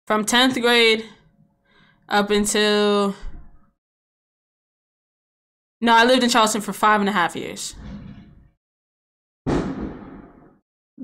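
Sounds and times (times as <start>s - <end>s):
firework bang: 9.5s - 10.6s.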